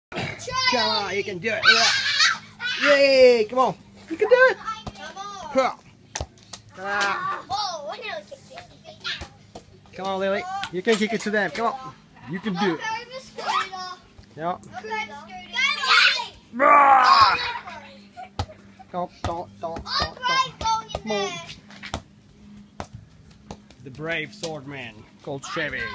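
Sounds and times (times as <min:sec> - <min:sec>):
children calling out: 0:01.6 - 0:03.0, 0:12.6 - 0:14.0, 0:14.8 - 0:18.3
rubber ball bouncing on concrete: 0:19.2 - 0:24.6.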